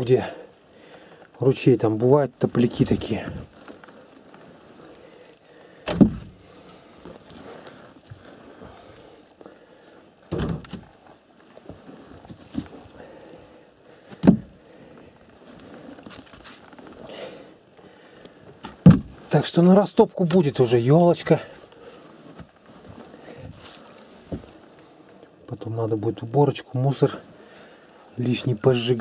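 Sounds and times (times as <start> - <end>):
rustling: 0.7 - 25.4
firewood logs knocking: 5.7 - 7.2, 10.3 - 11.0, 14.0 - 14.6, 18.6 - 19.3
heavy wooden thumps: 5.8 - 7.2, 10.3 - 10.9, 14.0 - 14.6, 18.6 - 19.3.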